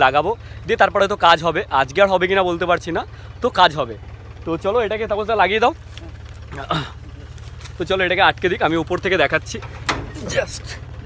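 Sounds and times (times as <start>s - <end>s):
man talking: 0.0s - 10.9s
diesel engine idling: 0.0s - 11.0s.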